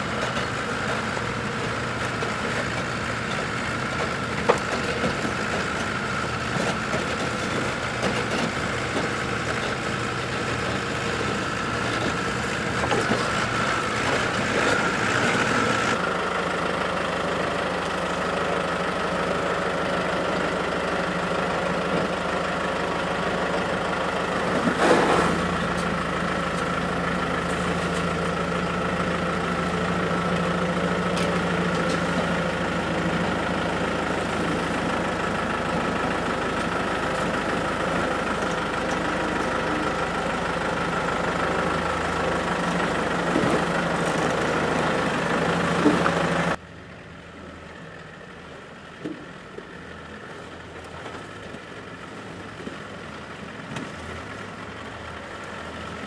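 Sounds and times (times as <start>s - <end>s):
off-road engines crawling over rocks: 0.0s - 46.6s, 47.3s - 56.0s.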